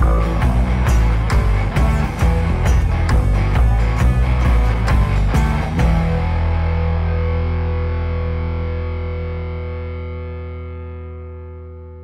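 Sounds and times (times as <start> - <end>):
distorted electric guitar chord ringing: 0.0 - 12.0.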